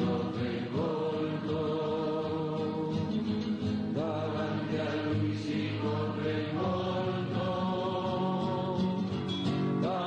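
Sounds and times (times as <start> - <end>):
slow sung chant: 0.0 - 10.0.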